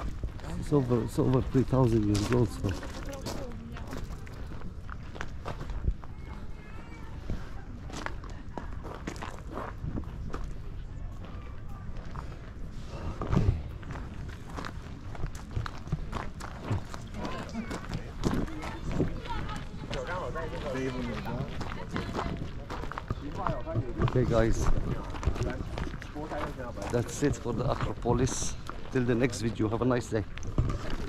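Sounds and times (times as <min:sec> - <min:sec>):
footsteps crunching on gravel: 0:00.0 - 0:06.6, 0:07.3 - 0:31.0
chatter of voices: 0:05.5 - 0:09.8, 0:15.9 - 0:31.0.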